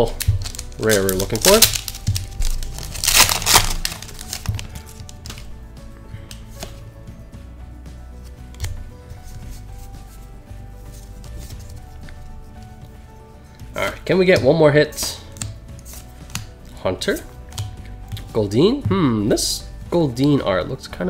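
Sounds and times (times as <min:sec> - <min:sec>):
foil wrapper tearing and crinkling: 0:00.0 - 0:05.4
trading cards clicking and rustling: 0:00.0 - 0:05.6, 0:06.2 - 0:06.8, 0:08.2 - 0:09.7, 0:13.6 - 0:18.4
quiet background music: 0:00.0 - 0:21.0.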